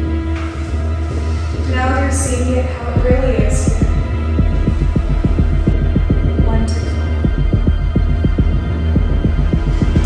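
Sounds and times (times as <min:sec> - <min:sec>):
low steady drone: 0:00.0 - 0:10.0
fast throbbing pulse: 0:02.2 - 0:10.0.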